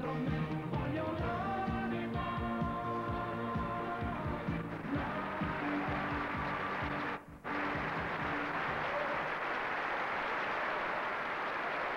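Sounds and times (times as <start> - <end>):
pop band with drums: 0.0 - 8.9
audience applause: 4.6 - 11.9.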